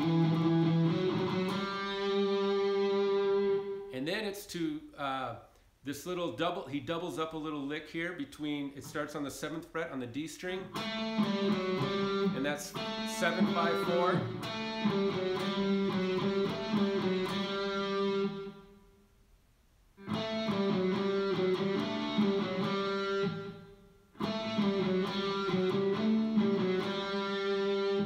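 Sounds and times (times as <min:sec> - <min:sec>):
electric guitar lick: 0:00.0 - 0:03.9, 0:10.6 - 0:18.6, 0:20.0 - 0:28.0.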